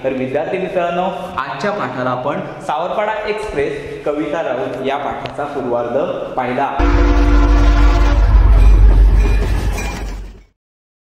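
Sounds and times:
two-note train whistle: 6.8 - 9.2
train rumbling and clattering: 8.2 - 10.5.

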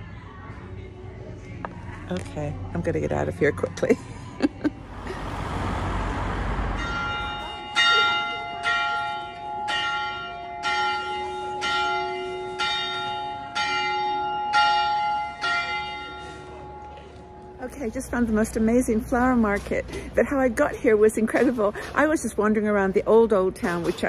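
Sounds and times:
rushing noise: 4.8 - 7.7
church bell ringing: 6.2 - 18.8.

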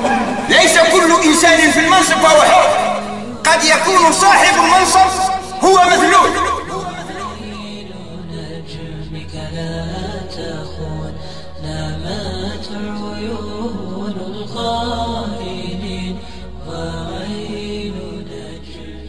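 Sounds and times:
voice chanting: 0.0 - 8.8.

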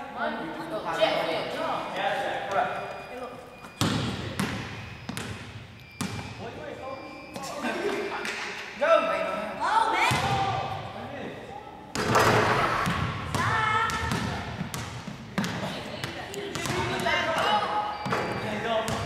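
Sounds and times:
basketballs bouncing on gym floor: 3.7 - 6.4, 10.0 - 10.9, 11.9 - 19.0
kids voices and shouts: 9.6 - 10.6.

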